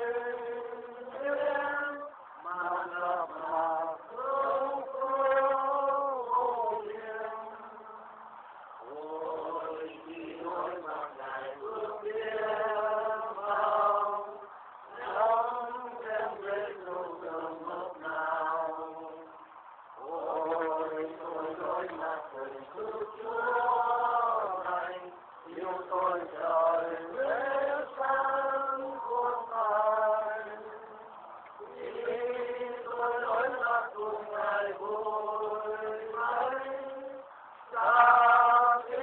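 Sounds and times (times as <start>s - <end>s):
congregation singing a hymn: 0.0s - 39.0s
voices chanting slowly: 0.0s - 39.0s.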